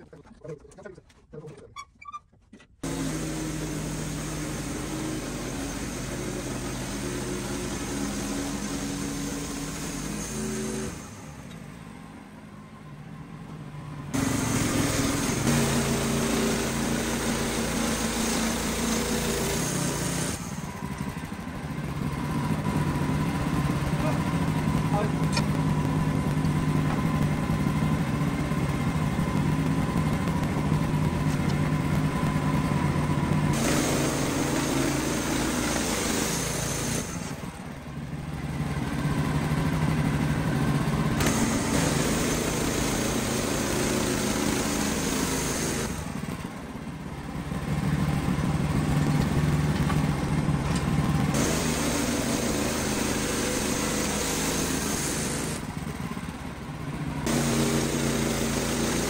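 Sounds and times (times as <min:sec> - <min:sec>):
band sawmill sawing log: 0:02.8 - 0:11.5, 0:14.1 - 0:20.9, 0:33.0 - 0:37.8, 0:39.2 - 0:46.5, 0:47.6 - 0:55.8, 0:57.2 - 0:59.0.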